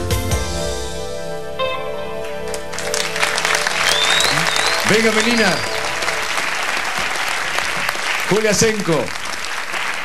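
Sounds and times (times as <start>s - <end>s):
audience applauding: 2.5s - 10.0s
high whistle: 3.7s - 6.2s.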